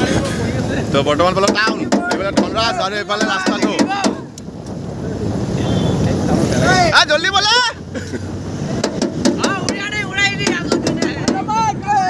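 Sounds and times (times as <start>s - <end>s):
people calling out loudly: 1.7s - 4.4s
sharp knocks or claps: 8.8s - 9.8s.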